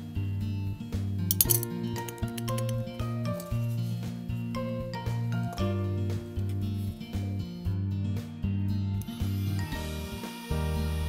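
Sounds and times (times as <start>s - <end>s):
background music with beat: 0.0s - 11.0s
metal spoon clinking on tin: 1.3s - 3.6s.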